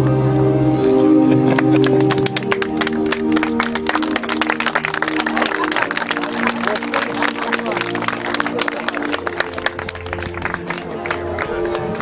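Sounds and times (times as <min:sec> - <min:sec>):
music with long held notes: 0:00.0 - 0:12.0
crowd clapping: 0:01.4 - 0:12.0.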